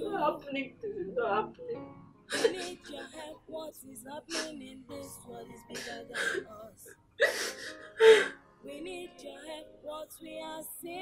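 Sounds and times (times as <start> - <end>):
soft music with singing: 0.0 - 11.0
woman sobbing: 2.3 - 3.4, 4.2 - 4.7, 5.7 - 8.4.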